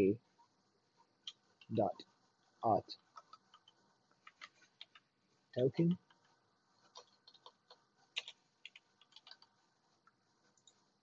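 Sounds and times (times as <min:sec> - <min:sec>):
keyboard typing: 0:03.0 - 0:05.1, 0:05.9 - 0:10.9.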